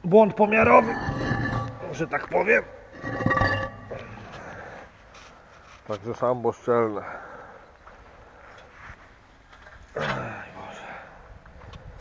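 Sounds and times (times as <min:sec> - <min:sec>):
concrete lid knocking and scraping: 0:00.5 - 0:04.4.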